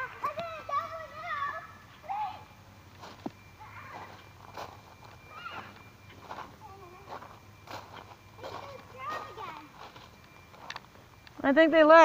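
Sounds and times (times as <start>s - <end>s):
young child squealing: 5.3s - 5.7s.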